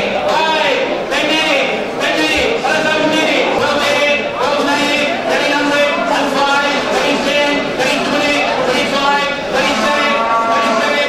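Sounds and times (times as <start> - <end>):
auctioneer's rapid sing-song chant: 0.0 - 11.0.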